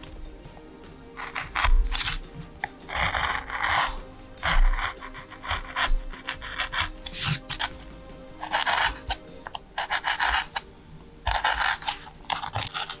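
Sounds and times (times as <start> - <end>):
hand gouge scraping wood: 1.2 - 13.0.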